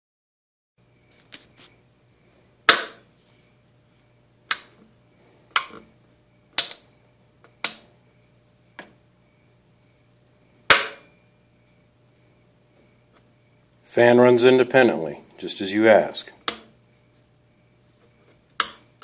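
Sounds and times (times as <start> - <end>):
faint steady hum: 0.8 - 19.0.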